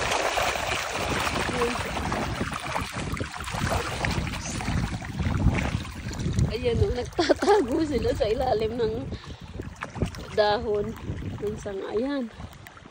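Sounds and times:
stream splashing over stones: 0:00.0 - 0:12.9
wind buffeting microphone: 0:00.0 - 0:12.9.

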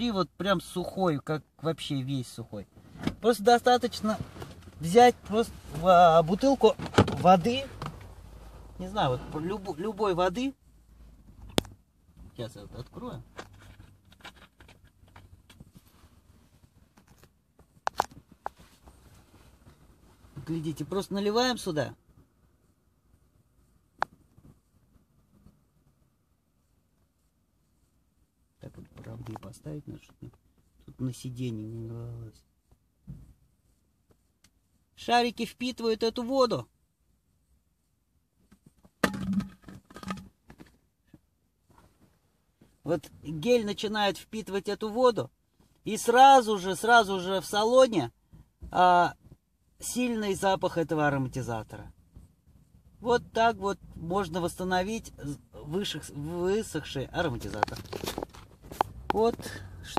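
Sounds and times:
rustling and knocking handling noise: 0:04.0 - 0:08.4, 0:13.2 - 0:20.4, 0:23.9 - 0:25.6, 0:38.3 - 0:42.8, 0:57.2 - 0:59.9
plastic bottle crinkling: 0:57.6 - 0:58.9.

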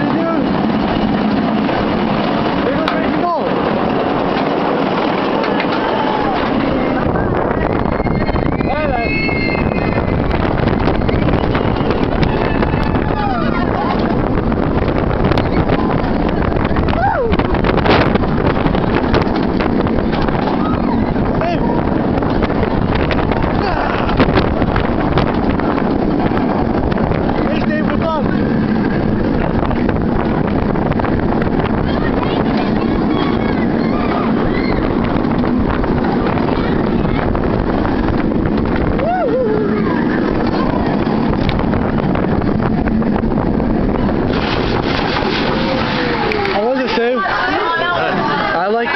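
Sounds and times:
roller coaster train rumbling: 0:00.0 - 0:48.9
wind buffeting microphone: 0:00.0 - 0:48.9
riders yelling: 0:38.9 - 0:40.8.

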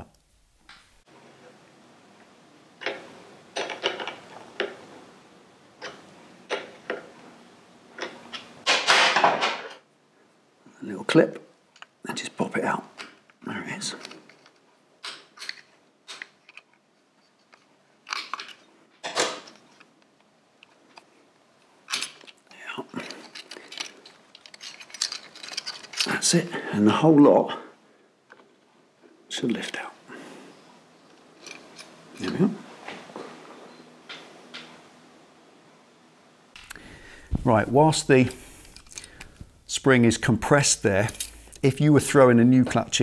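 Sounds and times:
metal parts clinking: 0:14.0 - 0:19.9, 0:21.8 - 0:26.4, 0:31.1 - 0:32.4, 0:38.3 - 0:39.4, 0:40.7 - 0:41.7
metal scraping rattle: 0:23.0 - 0:26.3.

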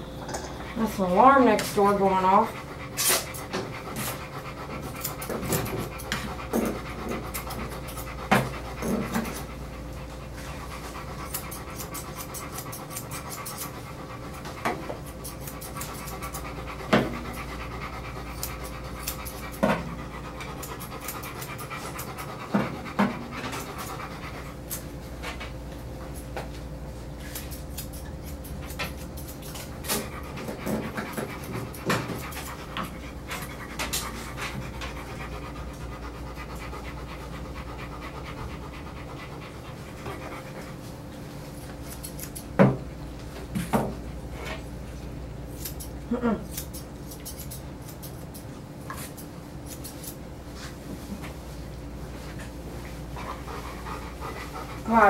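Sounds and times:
dog panting: 0:00.5 - 0:26.2, 0:27.4 - 0:42.5, 0:52.1 - 0:55.0
scissors snipping: 0:11.3 - 0:13.7, 0:15.2 - 0:16.4, 0:18.4 - 0:19.6, 0:27.3 - 0:30.1, 0:41.6 - 0:42.6, 0:45.5 - 0:50.2.

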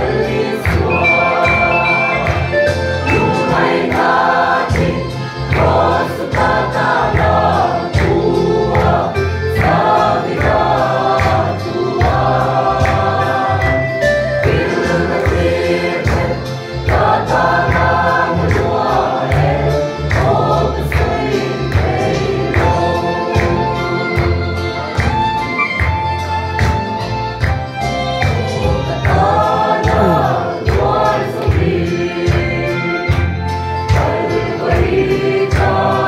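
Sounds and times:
mixed choir singing a hymn: 0:00.0 - 0:25.6, 0:28.2 - 0:36.0
steady beat: 0:00.7 - 0:06.6.

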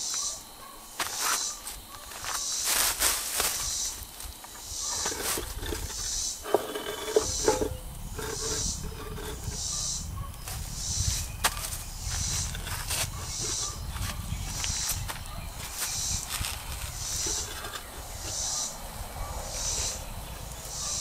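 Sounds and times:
sharp squeaks: 0:04.8 - 0:10.0, 0:10.9 - 0:18.7
stone grinding and scraping: 0:04.9 - 0:09.8, 0:12.2 - 0:13.8, 0:16.4 - 0:18.6.

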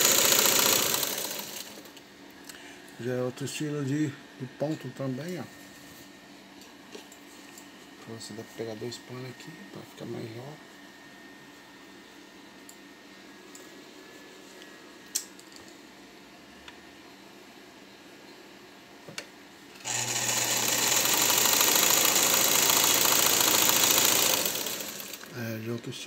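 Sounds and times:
sewing machine running: 0:00.0 - 0:02.0, 0:19.8 - 0:25.4.

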